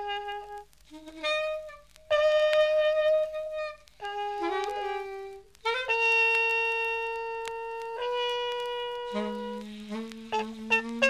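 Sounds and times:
horn low sustained note: 0.0 - 11.0
saxophone held notes: 0.0 - 11.0.

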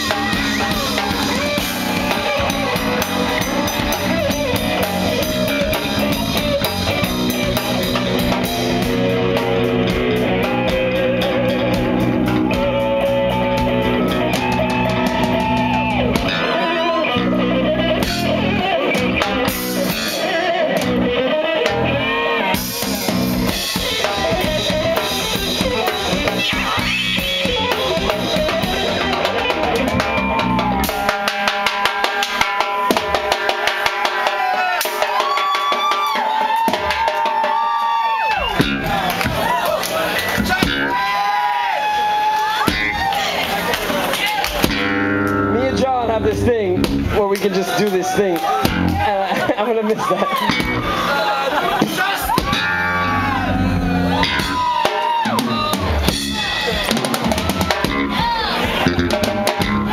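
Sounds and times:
bass guitar: 0.0 - 59.9
drum kit: 0.0 - 59.9
electric guitar: 0.0 - 59.9.

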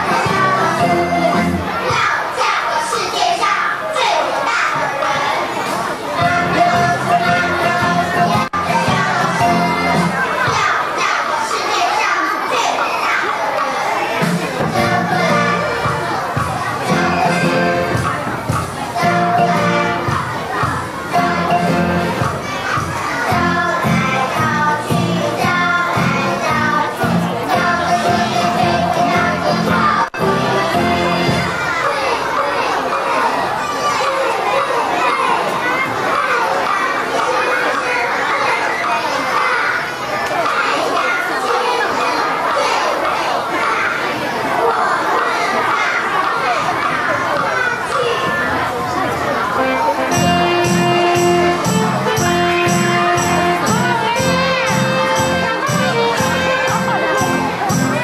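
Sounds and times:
backing music: 0.0 - 1.8, 6.2 - 10.6, 14.2 - 31.7, 49.6 - 58.0
children talking and calling out: 0.0 - 58.0.

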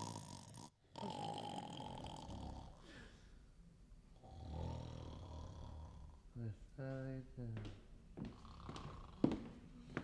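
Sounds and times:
man snoring heavily: 0.0 - 2.8, 4.2 - 6.2.

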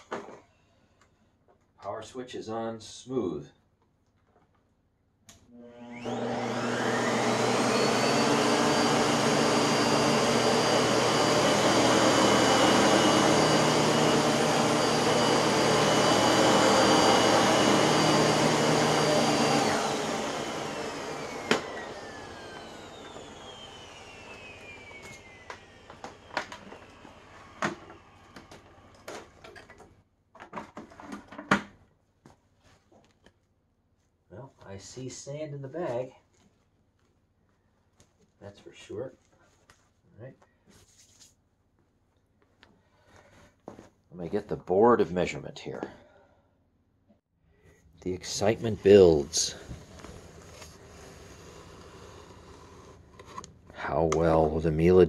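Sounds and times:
vacuum cleaner motor whine: 5.5 - 29.5, 48.1 - 55.0.

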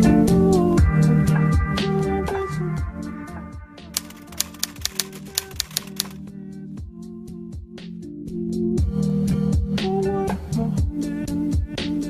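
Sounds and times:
typewriter key clicks: 4.0 - 6.2.

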